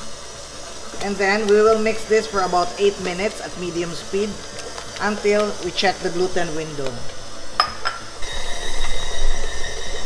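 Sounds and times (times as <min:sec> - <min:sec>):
stand mixer motor whining: 0:00.0 - 0:07.6, 0:08.2 - 0:10.0.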